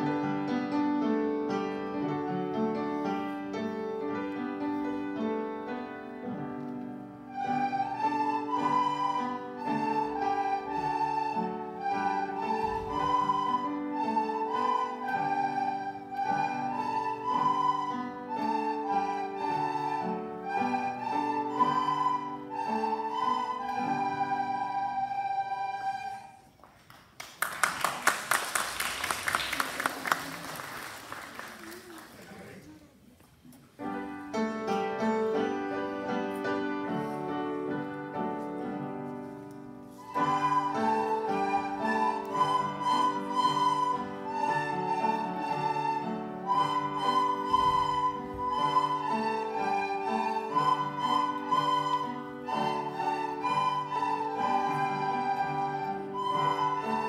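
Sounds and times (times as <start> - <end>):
piano accompaniment: 0.0 - 26.4, 33.8 - 57.0
children playing recorders: 6.3 - 26.6, 34.7 - 57.0
applause: 26.7 - 32.7.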